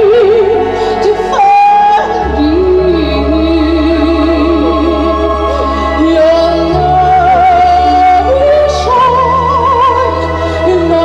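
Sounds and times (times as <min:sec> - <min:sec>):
sustained instrumental accompaniment: 0:00.0 - 0:11.0
woman singing with vibrato: 0:00.0 - 0:11.0.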